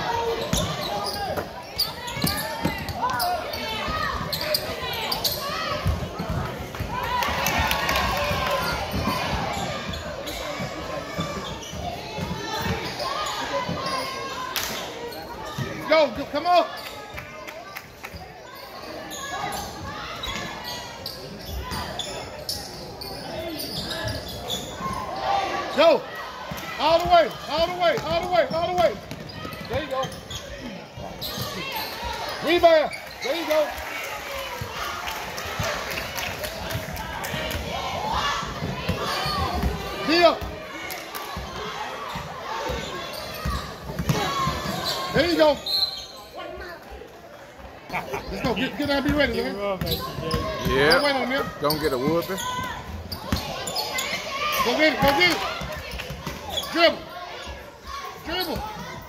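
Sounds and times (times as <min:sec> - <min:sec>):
basketball bouncing on hardwood: 0:44.0 - 0:44.2.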